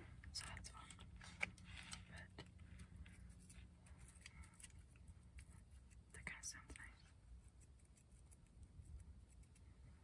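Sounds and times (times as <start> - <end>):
faint whispering: 0.0 - 3.0, 5.5 - 7.2.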